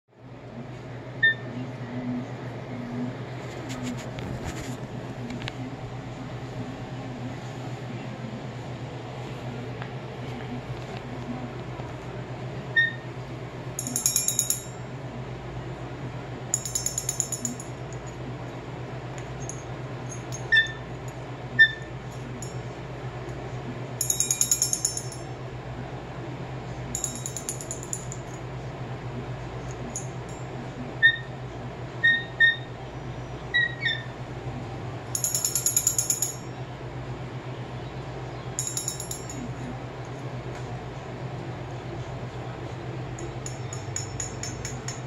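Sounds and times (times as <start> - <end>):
steady low hum: 0.1 - 45.0
beak tapping brass bell: 13.8 - 14.8, 16.6 - 17.7, 24.0 - 25.3, 27.0 - 28.4, 35.2 - 36.5, 38.6 - 39.4
handbell ringing: 13.8 - 14.8, 16.6 - 17.7, 24.0 - 25.3, 27.0 - 28.4, 35.2 - 36.5, 38.6 - 39.5
light metallic tapping: 43.2 - 45.0.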